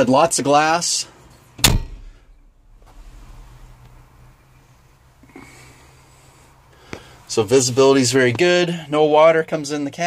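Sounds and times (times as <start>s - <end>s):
sharp click: 1.6s - 2.5s
short puff: 1.6s - 7.1s
tractor engine idling: 1.7s - 7.4s.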